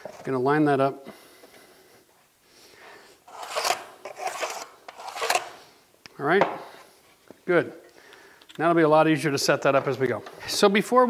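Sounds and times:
molding scraping against saw fence: 3.3s - 5.5s.

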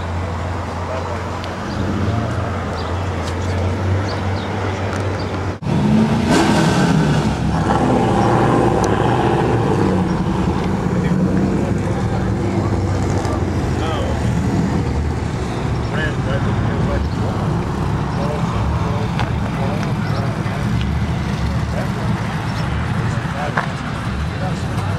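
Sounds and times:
car engine idling: 7.4s - 24.9s.

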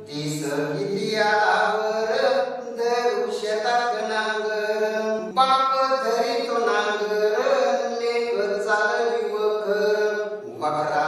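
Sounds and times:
man chanting a poem: 0.0s - 11.0s.

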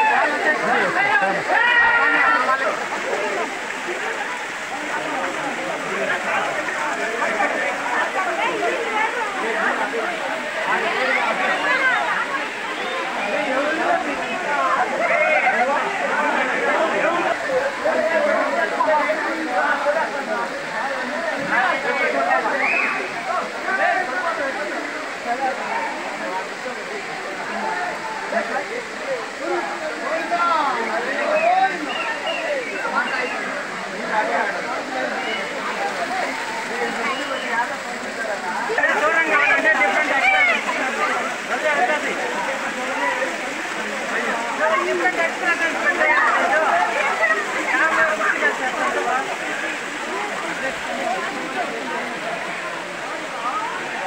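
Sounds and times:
crowd chatter: 0.0s - 54.0s
waterfall rushing: 0.0s - 54.0s.

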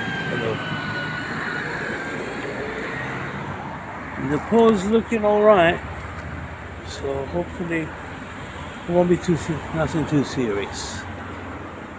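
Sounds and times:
road traffic hiss and rumble: 0.0s - 11.9s.

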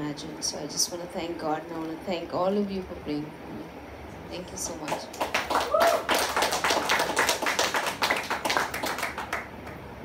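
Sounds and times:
people applauding: 4.9s - 9.9s.

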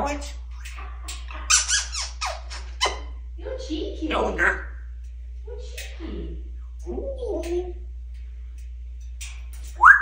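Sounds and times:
parrot squeaking: 0.0s - 3.2s.

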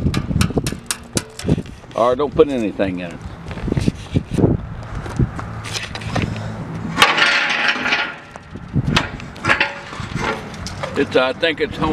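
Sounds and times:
footsteps crunching on gravel: 1.4s - 7.0s.

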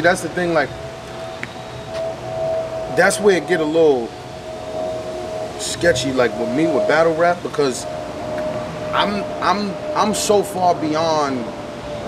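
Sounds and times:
steady mid-pitched hum: 0.0s - 12.0s.

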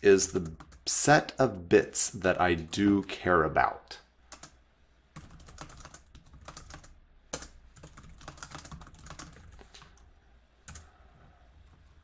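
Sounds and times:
typing on computer keyboard: 5.2s - 10.0s, 10.7s - 10.9s.

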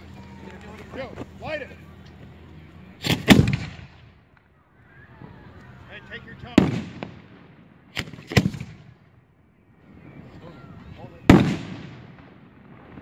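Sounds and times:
fireworks shots with echo: 3.0s - 9.2s, 9.9s - 13.0s.

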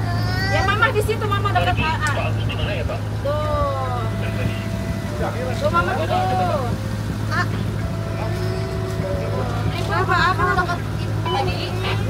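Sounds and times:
indistinct voices talking: 0.0s - 12.0s
steady low hum: 0.0s - 12.0s.

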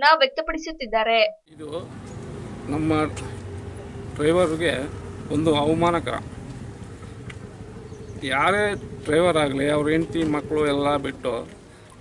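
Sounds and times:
low droning hum: 1.6s - 11.7s.

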